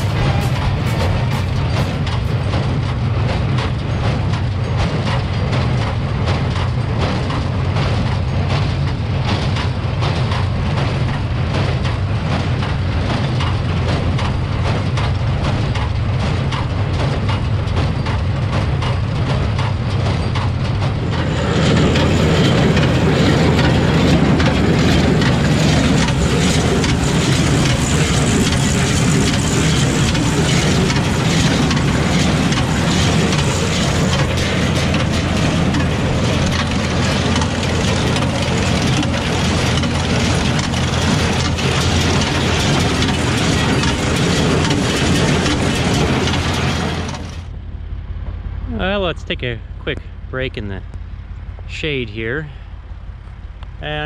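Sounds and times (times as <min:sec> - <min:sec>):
baler clattering: 0:00.0 - 0:47.5
tractor engine droning: 0:00.0 - 0:54.0.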